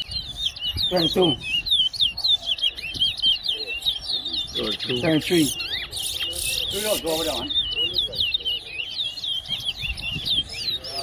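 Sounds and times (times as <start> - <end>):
finch singing whistled notes: 0.0 - 11.0.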